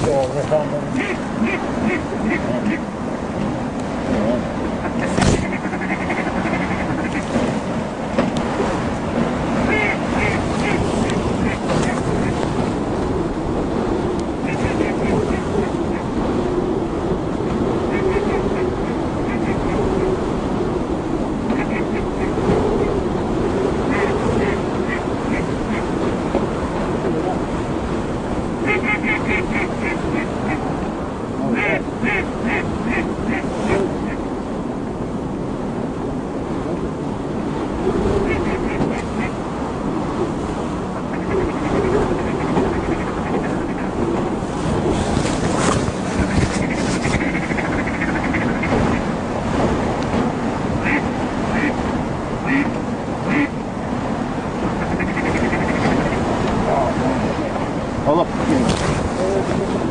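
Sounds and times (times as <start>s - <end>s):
water noise: 0.0s - 59.9s
wind: 0.0s - 59.9s
ducks quacking: 0.5s - 2.9s, 4.1s - 7.5s, 9.6s - 12.4s, 14.4s - 16.1s, 17.9s - 19.8s, 21.5s - 22.4s, 23.8s - 25.9s, 28.6s - 30.8s, 31.4s - 34.3s, 38.2s - 39.4s, 41.1s - 44.0s, 45.2s - 49.1s, 50.8s - 51.8s, 52.4s - 53.6s, 54.7s - 57.6s.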